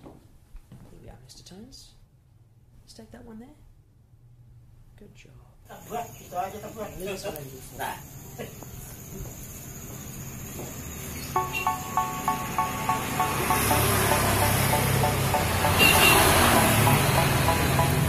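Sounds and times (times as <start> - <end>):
motor vehicle passing close: 11.7 - 18.0.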